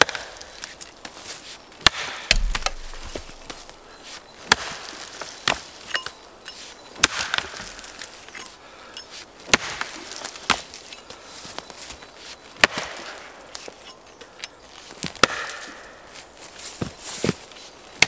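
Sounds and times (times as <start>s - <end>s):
axe chopping into a log: 1.8s - 3.7s, 4.5s - 4.8s, 7.0s - 7.6s, 9.5s - 9.9s, 12.6s - 13.0s, 15.0s - 15.7s
lighter wood knocks: 2.3s - 3.6s.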